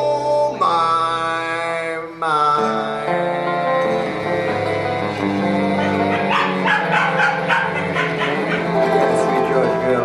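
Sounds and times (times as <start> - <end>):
acoustic guitars and double bass: 0.0 - 10.0.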